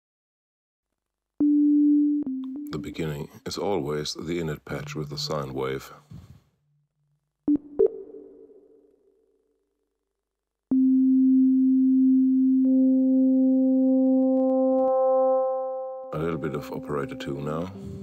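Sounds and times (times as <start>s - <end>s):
synthesizer sine-wave tone: 7.5s - 8.9s, 10.7s - 18.0s.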